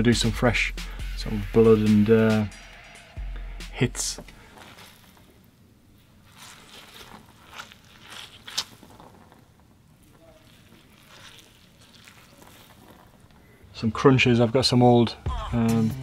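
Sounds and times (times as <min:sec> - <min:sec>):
rustling squelches: 0:00.7 - 0:14.8
hands squeezing and rubbing object: 0:03.7 - 0:13.7
sharp crackle: 0:04.0 - 0:13.9.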